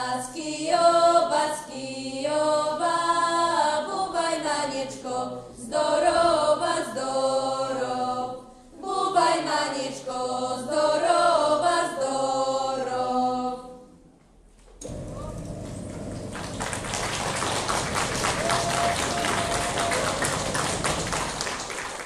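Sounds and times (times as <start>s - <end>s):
a cappella group singing: 0.0s - 14.0s
audience applause: 16.1s - 22.0s.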